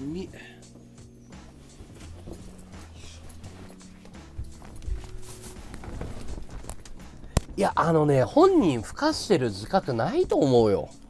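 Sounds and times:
clothing rustle: 0.0s - 7.6s
faint background music: 0.0s - 11.0s.

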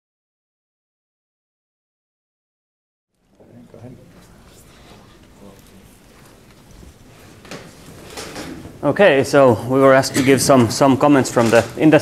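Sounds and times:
soft knocks and rustles: 4.1s - 8.8s
man's amplified voice: 8.8s - 12.0s.

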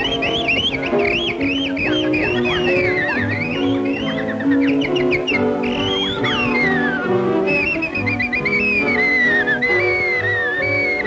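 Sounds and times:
high bird-like chirps: 0.0s - 11.0s
high upward gliding whistle: 0.0s - 11.0s
orchestral cartoon music: 0.0s - 11.0s.

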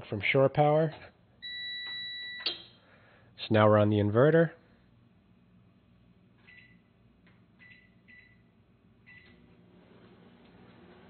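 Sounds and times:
microwave keypad beeping: 1.4s - 2.7s, 7.6s - 8.5s
microwave humming: 6.5s - 11.0s.

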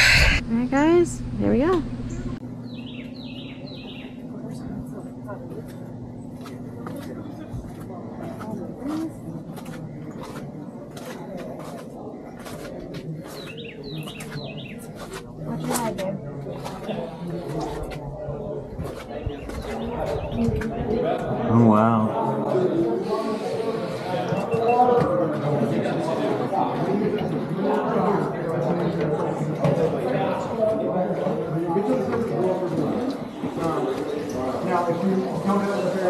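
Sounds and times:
steady low hum: 0.0s - 21.9s
distant voices: 0.0s - 36.0s
bird chirping: 2.0s - 4.2s.

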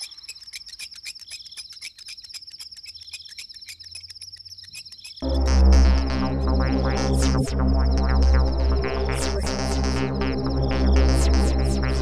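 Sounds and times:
crickets chirping: 0.0s - 5.2s.

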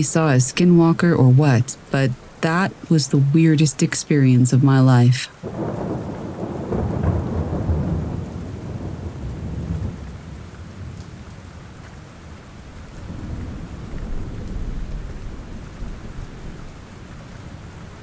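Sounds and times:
steady rain: 0.0s - 18.0s
thunder rumbling: 5.4s - 18.0s.

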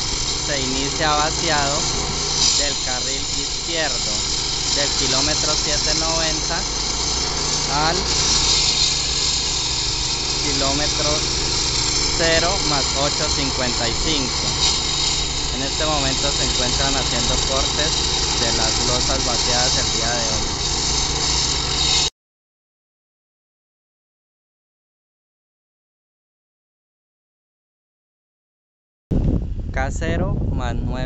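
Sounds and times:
blade hissing through concrete: 0.0s - 22.1s
concrete saw engine: 0.0s - 22.1s.

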